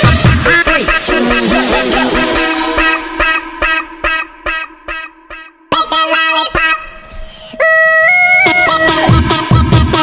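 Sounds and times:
short pitched synth stabs: 0.0s - 10.0s
held low synth note: 1.4s - 5.7s.

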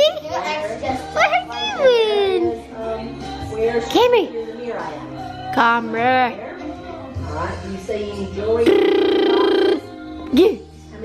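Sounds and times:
young child vocalizing: 8.6s - 9.8s.

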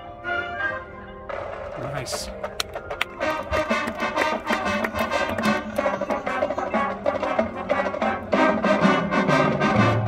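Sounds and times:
brass chords: 0.0s - 10.0s
drum and percussion hits: 1.3s - 8.7s.

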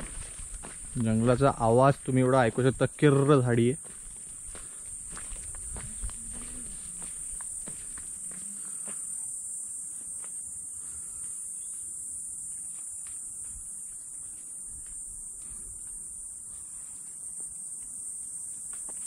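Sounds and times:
insects chirping chorus: 0.0s - 19.0s
soft footsteps on trail: 0.0s - 19.0s.

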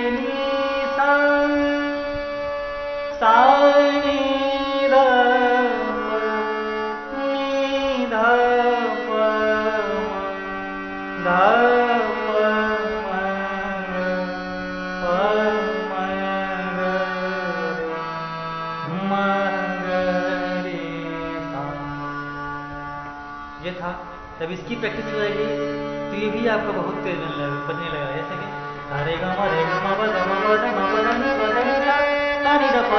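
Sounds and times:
harmonium playing a scale: 0.0s - 32.9s
man singing syllables: 26.1s - 32.9s.

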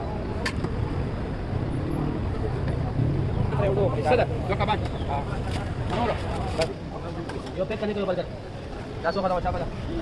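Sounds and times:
vehicle traffic rumble: 0.0s - 10.0s.

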